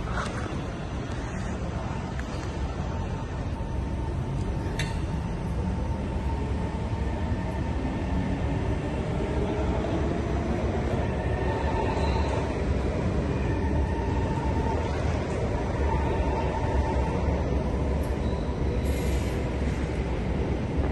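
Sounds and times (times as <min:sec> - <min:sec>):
metro train rumbling: 0:00.0 - 0:20.9.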